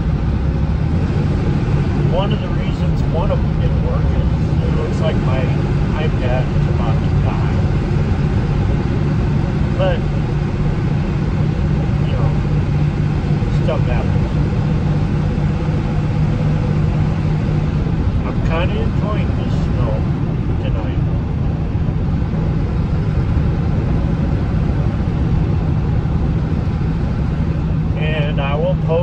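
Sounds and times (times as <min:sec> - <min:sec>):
vehicle engine hum: 0:00.0 - 0:29.0.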